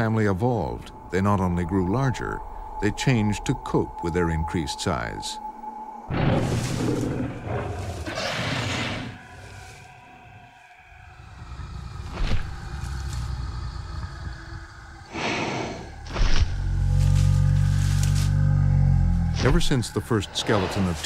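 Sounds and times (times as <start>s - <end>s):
quiet held music tones: 0.0s - 6.8s
deep low rumble: 9.1s - 15.2s, 15.8s - 20.1s
dinosaur growl: 11.0s - 19.9s.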